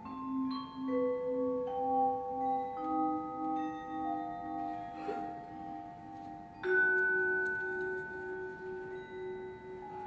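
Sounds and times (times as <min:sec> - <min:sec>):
vibraphone chord ringing: 0:00.0 - 0:10.0.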